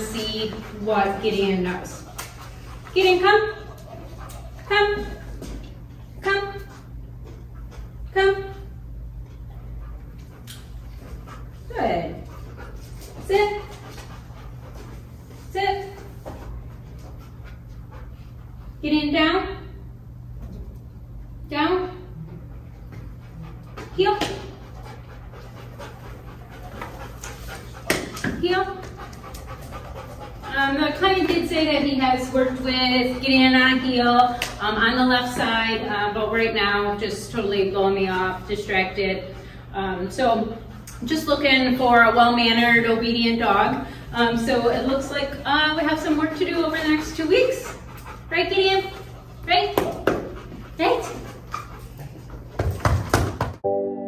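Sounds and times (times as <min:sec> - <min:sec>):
dog panting: 0:00.0 - 0:06.0, 0:06.6 - 0:18.9, 0:22.1 - 0:53.1.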